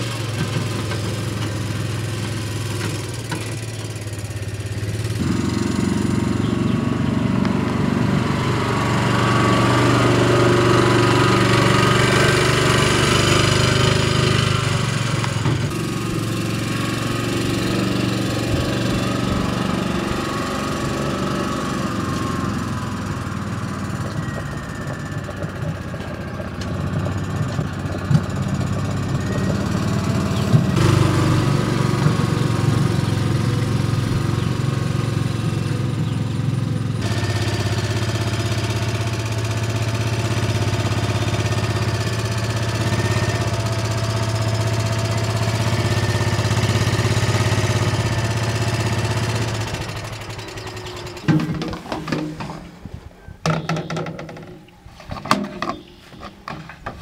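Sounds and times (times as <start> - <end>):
small engine idling: 0.0 - 57.0.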